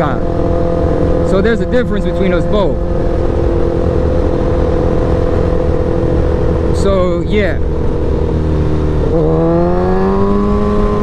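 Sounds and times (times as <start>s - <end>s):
motorcycle engine running: 0.0s - 11.0s
wind noise on microphone: 0.0s - 11.0s.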